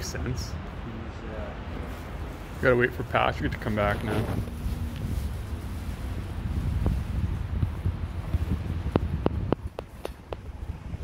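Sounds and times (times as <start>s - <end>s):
wind buffeting microphone: 1.6s - 11.0s.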